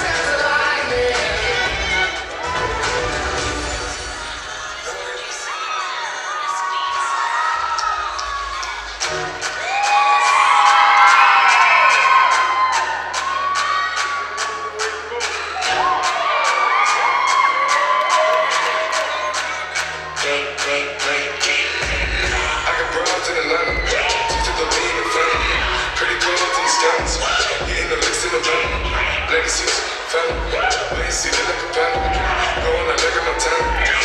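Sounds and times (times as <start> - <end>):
hip-hop dance music: 0.0 - 34.0
audience cheering: 0.1 - 4.2, 4.9 - 20.2, 22.2 - 34.0.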